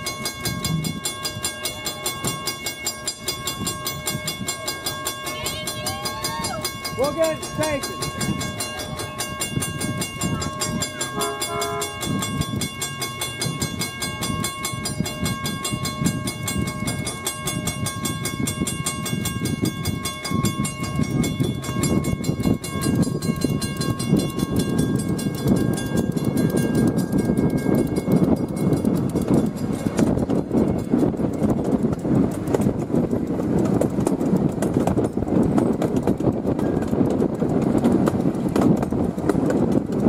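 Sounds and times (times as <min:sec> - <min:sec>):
crossing signal bell ringing: 0:00.0 - 0:31.6
miniature train wheels clattering: 0:00.0 - 0:40.0
train horn toot: 0:11.1 - 0:12.2.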